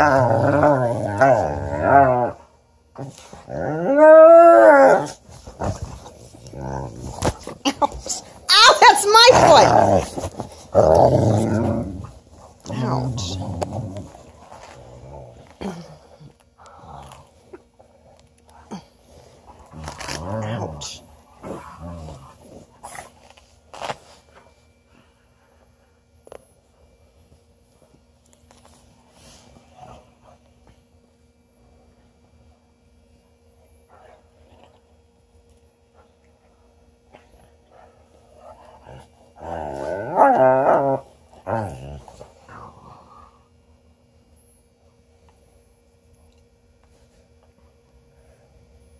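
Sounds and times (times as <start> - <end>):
dogs growling: 0.0 - 8.3, 9.3 - 18.0, 37.2 - 43.4.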